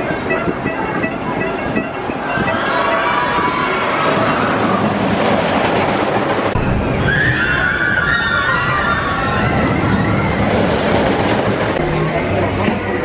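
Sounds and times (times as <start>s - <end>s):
roller coaster rumbling on track: 0.0s - 13.0s
riders screaming: 6.9s - 10.7s.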